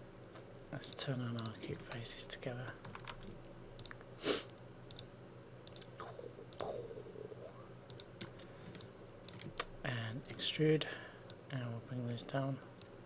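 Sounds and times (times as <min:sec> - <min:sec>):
computer mouse clicks: 0:00.4 - 0:02.1, 0:02.8 - 0:04.0, 0:04.9 - 0:05.9, 0:06.5 - 0:10.4
soft mouth noises: 0:05.8 - 0:07.7.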